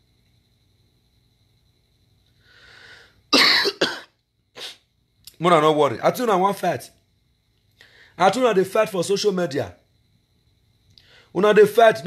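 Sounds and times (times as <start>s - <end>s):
man coughing: 3.4s - 4.8s.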